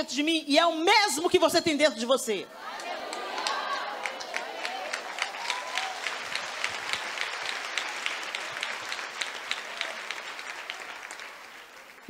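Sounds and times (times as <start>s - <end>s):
audience applauding: 2.6s - 12.0s.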